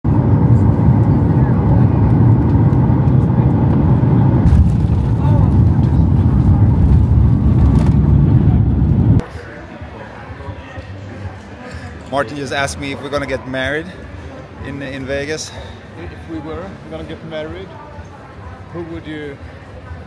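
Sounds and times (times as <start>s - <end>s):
jet engines and wheels rumbling: 0.1s - 9.3s
airport terminal ambience: 0.1s - 20.0s.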